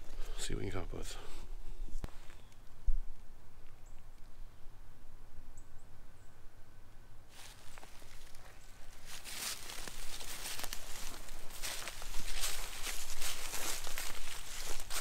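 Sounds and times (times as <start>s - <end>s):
footsteps crunching through dry leaves: 7.3s - 15.0s.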